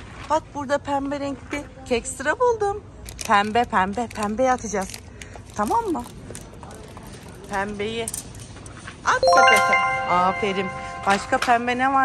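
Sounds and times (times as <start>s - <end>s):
bright bell-like chime: 9.2s - 11.7s.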